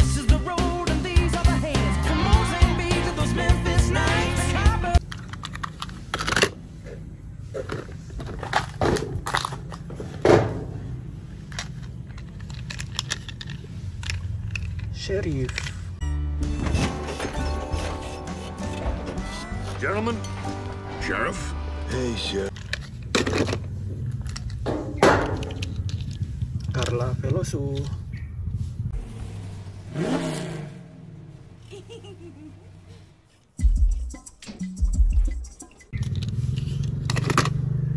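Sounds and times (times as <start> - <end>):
plastic toy cars clattering: 5.0 - 6.6, 7.5 - 16.0, 22.5 - 27.9, 36.0 - 37.6
toy cars clattering in metal basin: 11.4 - 16.0.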